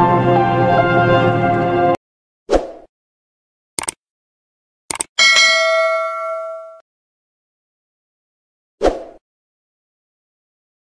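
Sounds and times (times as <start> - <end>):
bell ding: 5.2 - 6.8.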